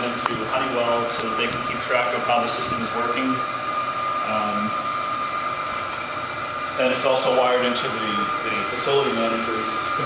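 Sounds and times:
constant whine: 0.0s - 10.0s
machinery whirring: 0.0s - 10.0s.

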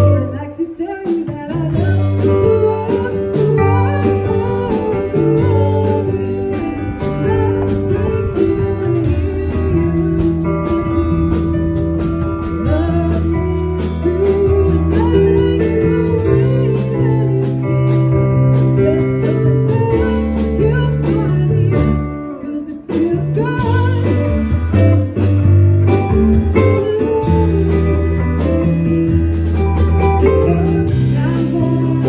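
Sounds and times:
drums: 0.0s - 32.0s
electric guitar: 0.0s - 32.0s
electric keyboard: 0.0s - 32.0s
woman singing: 0.0s - 32.0s.

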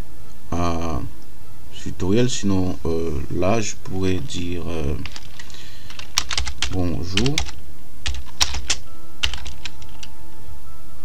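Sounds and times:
computer keyboard typing: 5.0s - 10.1s.

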